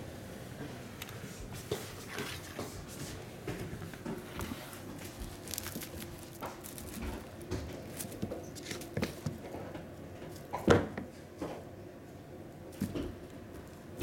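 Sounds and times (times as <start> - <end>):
kittens' paws pattering on wood floor: 1.1 - 10.5.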